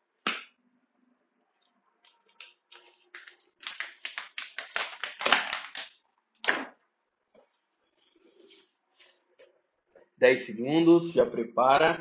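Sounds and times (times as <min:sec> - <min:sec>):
plastic bottle crinkling: 0:02.0 - 0:06.6.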